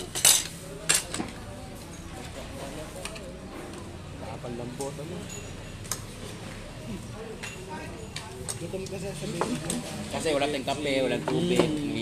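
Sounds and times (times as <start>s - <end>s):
cutlery clinking against plates: 0.0s - 3.3s.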